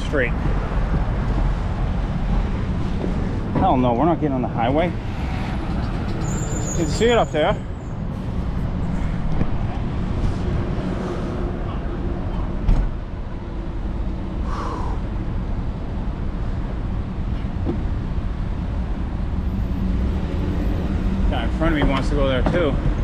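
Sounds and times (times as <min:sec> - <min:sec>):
vehicle engines idling: 0:00.0 - 0:23.0.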